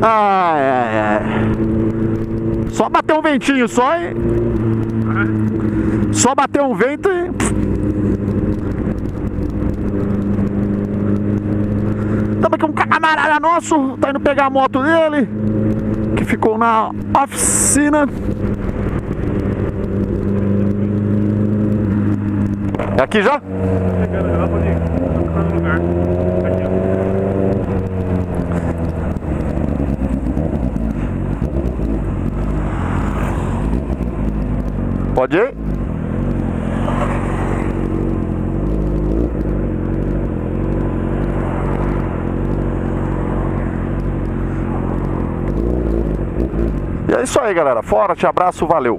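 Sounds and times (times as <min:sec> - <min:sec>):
motorcycle engine running: 0:00.0 - 0:48.9
wind and road noise: 0:00.0 - 0:48.9.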